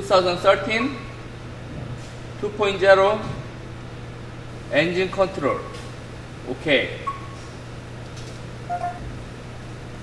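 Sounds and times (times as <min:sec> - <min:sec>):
low electrical hum: 0:00.0 - 0:10.0
short electronic beep: 0:08.7 - 0:09.0.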